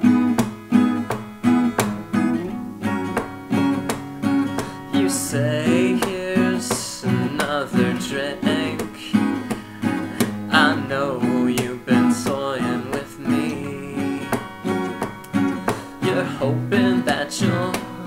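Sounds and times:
acoustic guitars strumming: 0:00.0 - 0:18.0
person singing: 0:04.5 - 0:18.0.

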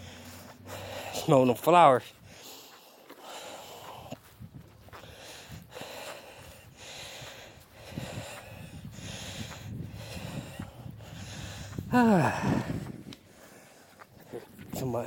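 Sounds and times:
footsteps swishing through grass: 0:02.1 - 0:08.6.

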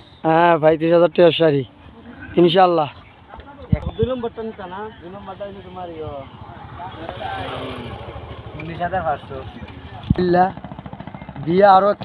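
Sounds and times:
people's voices: 0:00.2 - 0:12.0
motorcycle engine idling: 0:02.9 - 0:12.0.

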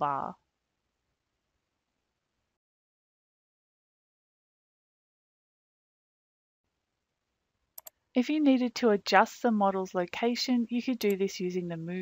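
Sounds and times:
quick small clicks: 0:07.8 - 0:08.0.

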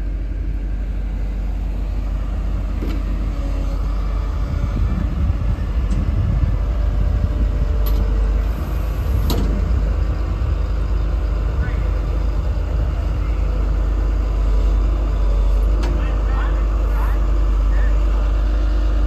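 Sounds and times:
diesel engine rumbling: 0:00.0 - 0:19.0
sharp clicks and knocks: 0:09.2 - 0:09.6.

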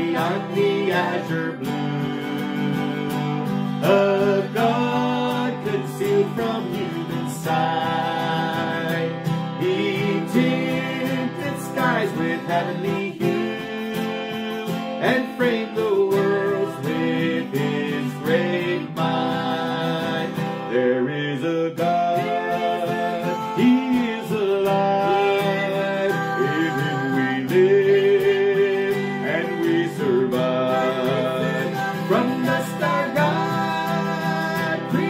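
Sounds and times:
man and woman singing a hymn: 0:00.0 - 0:35.0
strummed acoustic guitar: 0:00.0 - 0:35.0.

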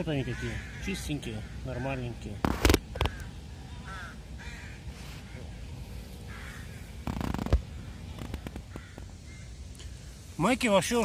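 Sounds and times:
harsh cawing bird calls: 0:00.0 - 0:10.6
sharp clicks: 0:07.0 - 0:09.1.

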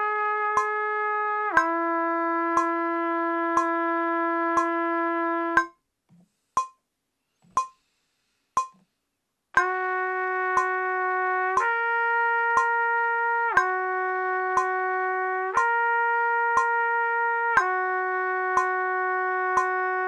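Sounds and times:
metronome ticking: 0:00.5 - 0:00.8, 0:01.5 - 0:03.9, 0:04.5 - 0:04.9, 0:05.6 - 0:05.8, 0:06.6 - 0:07.8, 0:08.6 - 0:08.9, 0:09.6 - 0:11.8, 0:12.5 - 0:20.0
trumpet slurring between notes: 0:09.6 - 0:20.0.

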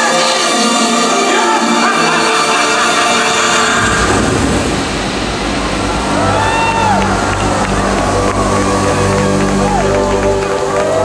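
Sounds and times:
soundtrack music over speakers: 0:00.0 - 0:11.0
deep steady rumble: 0:03.8 - 0:10.6.

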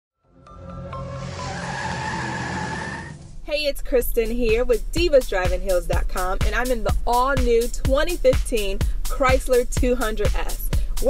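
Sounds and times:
music: 0:00.2 - 0:11.0
car tire squealing: 0:00.7 - 0:03.4.

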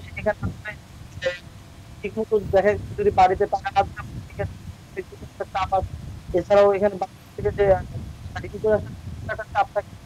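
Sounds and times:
man speaking: 0:00.0 - 0:01.4, 0:02.0 - 0:09.8
low steady rumble: 0:00.0 - 0:10.0.

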